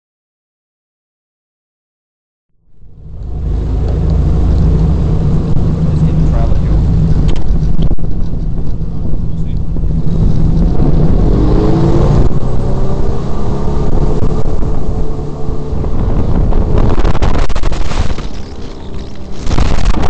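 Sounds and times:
jet boat engine running: 0:02.8 - 0:20.0.

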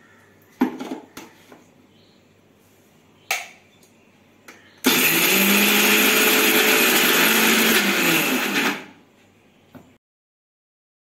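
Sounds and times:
mixer grinder running: 0:04.8 - 0:09.0.

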